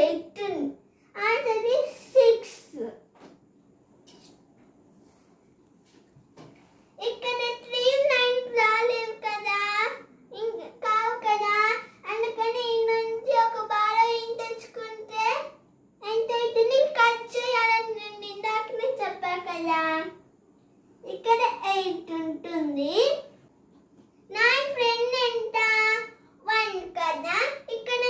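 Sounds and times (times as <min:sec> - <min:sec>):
girl talking in a sing-song voice: 0:00.0 - 0:03.0, 0:07.0 - 0:20.2, 0:21.1 - 0:23.3, 0:24.3 - 0:28.0.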